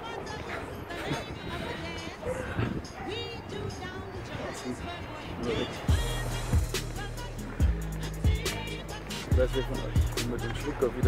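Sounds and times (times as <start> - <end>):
background music with beat and bass: 5.4 - 11.0.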